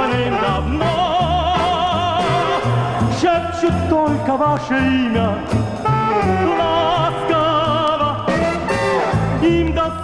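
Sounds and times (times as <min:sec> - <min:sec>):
band accompaniment: 0:00.0 - 0:10.0
walking bass line: 0:00.0 - 0:10.0.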